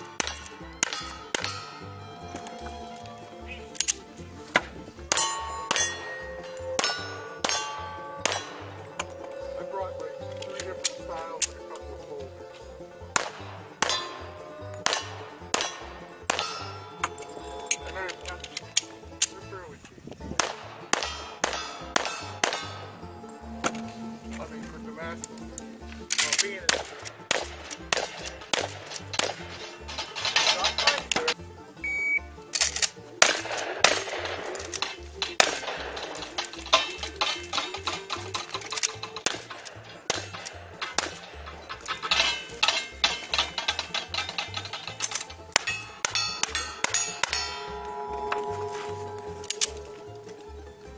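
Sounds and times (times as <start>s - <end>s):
bullets ringing on steel targets: 0.0s - 19.6s, 20.4s - 31.4s, 32.6s - 50.9s
bluegrass banjo music: 0.0s - 50.9s
gunshots: 13.2s - 14.2s, 14.8s - 16.8s, 20.4s - 23.0s, 26.1s - 29.5s, 33.2s - 36.9s.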